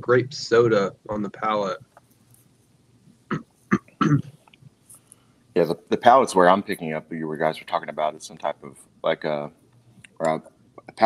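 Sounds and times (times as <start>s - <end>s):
person clearing throat: 3.3s - 4.3s.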